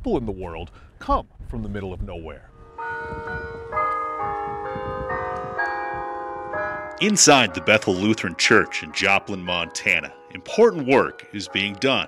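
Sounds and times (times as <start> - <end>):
church bells ringing: 2.5 - 12.0.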